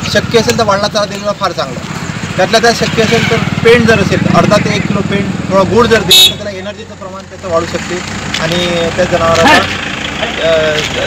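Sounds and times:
man speaking: 0.0 - 11.0
road traffic: 0.0 - 11.0
vehicle engine running: 0.0 - 11.0.

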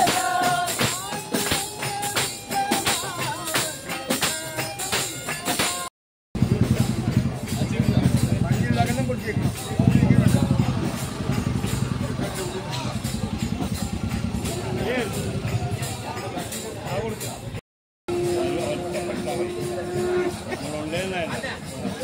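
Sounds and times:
voices: 0.0 - 22.0
tambourine jingling: 6.6 - 22.0.

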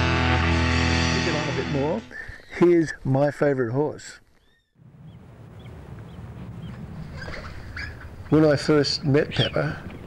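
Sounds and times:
high bird chirps: 4.4 - 8.3.

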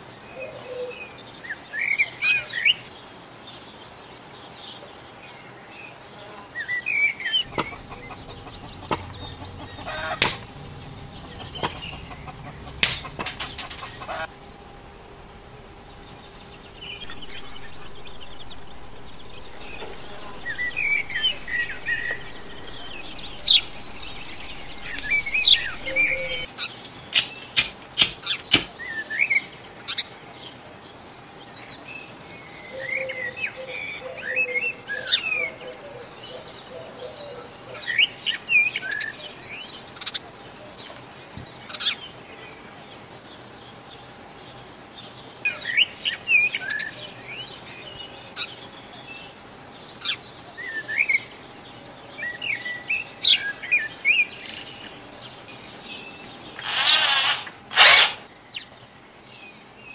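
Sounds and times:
small birds chirping: 0.0 - 59.9
side cutters snipping metal tube: 12.8 - 13.7, 27.1 - 28.7.

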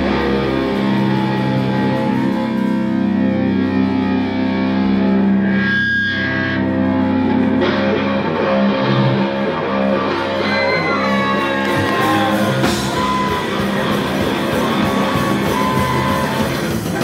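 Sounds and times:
distorted electric guitars: 0.0 - 17.0.

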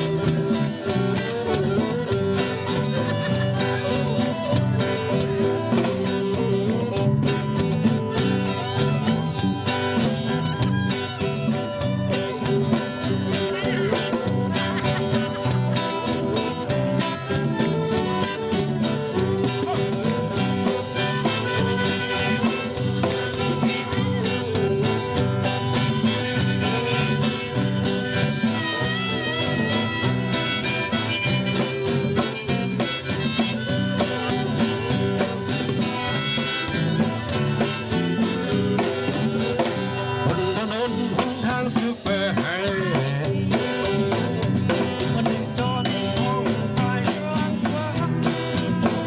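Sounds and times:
violin lead melody: 0.0 - 40.5
congas: 0.0 - 49.0
drum kit: 0.0 - 49.0
guitar: 0.0 - 49.0.

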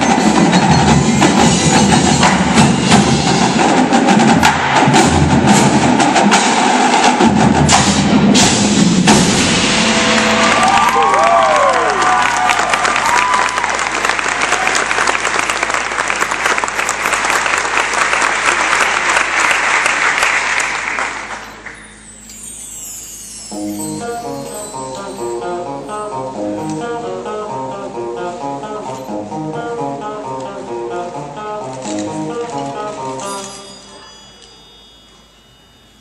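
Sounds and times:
mallet keyboards: 0.0 - 7.6, 21.4 - 36.0
marching drums: 0.0 - 10.7
drum kit: 0.0 - 11.6.

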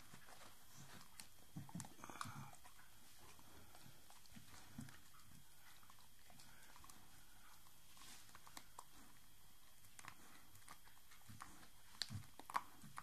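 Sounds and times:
dog chewing fabric: 0.0 - 13.0.

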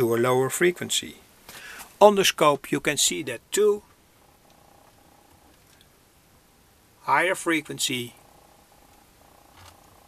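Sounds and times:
faint steady buzz: 0.0 - 10.0.

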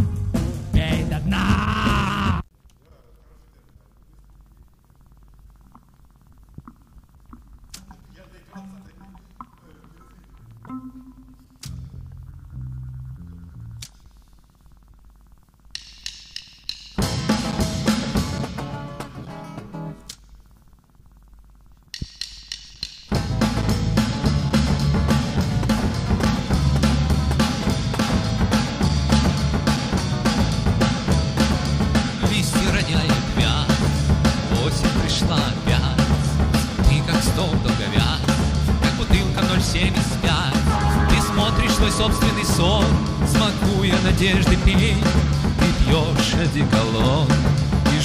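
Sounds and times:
faint steady hum: 0.0 - 48.0
tape hiss: 0.0 - 48.0
rock band playing: 17.0 - 19.9, 23.2 - 48.0
sharp percussion hits: 40.4 - 46.0
long wavering sung note: 40.7 - 43.9.

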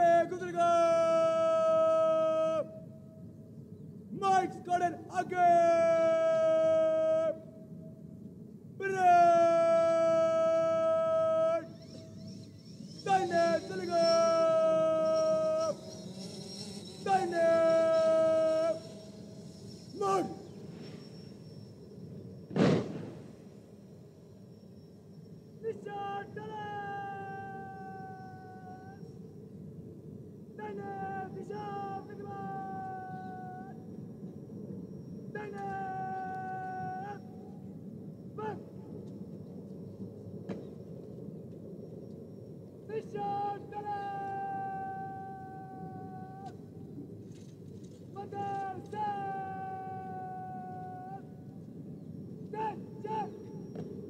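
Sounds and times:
shouted commands: 0.0 - 2.8, 4.2 - 7.4, 8.8 - 11.8, 13.0 - 15.8, 17.0 - 18.9, 19.9 - 20.5, 25.6 - 29.0, 30.6 - 33.8, 35.4 - 37.4, 38.4 - 38.7, 42.9 - 46.6, 48.2 - 51.4, 52.5 - 53.5.

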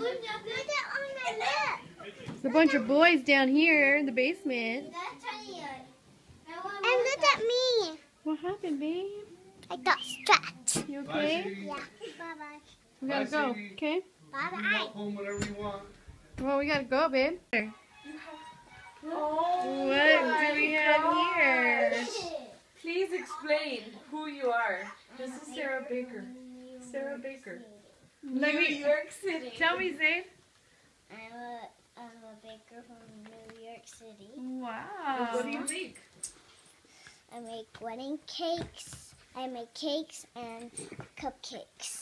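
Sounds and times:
children chattering: 0.0 - 3.0.

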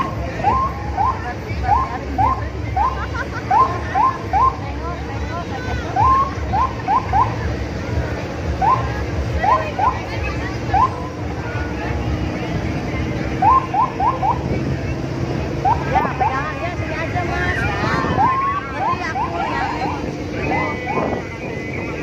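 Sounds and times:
crowd voices: 0.0 - 22.0
vehicle engine running: 0.0 - 22.0.

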